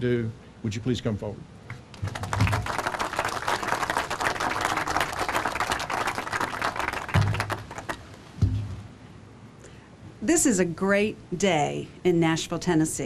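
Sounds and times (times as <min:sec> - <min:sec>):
audience applauding: 0:01.9 - 0:08.2.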